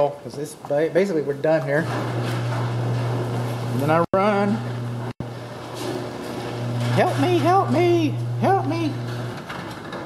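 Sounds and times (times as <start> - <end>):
door rolling on tracks: 1.6 - 10.0
garage door opener humming: 1.6 - 10.0.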